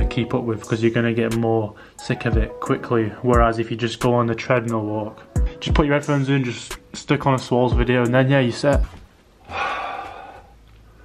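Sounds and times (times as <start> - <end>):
man exhaling: 9.4 - 10.6.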